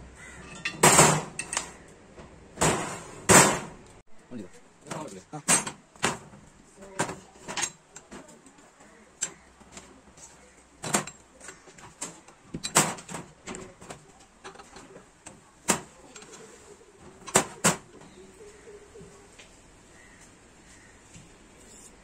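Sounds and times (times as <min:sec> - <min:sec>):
metal clanks and taps: 0:00.4 - 0:02.3, 0:07.4 - 0:08.4, 0:10.8 - 0:16.4.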